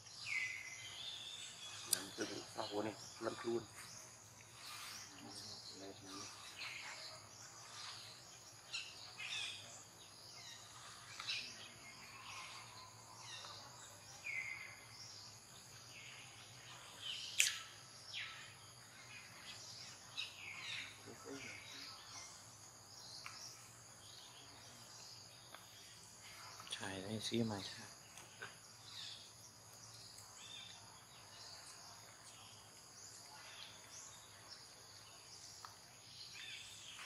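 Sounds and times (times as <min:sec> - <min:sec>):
bird chirps: 0:00.0 - 0:37.0
high insect drone: 0:00.0 - 0:37.0.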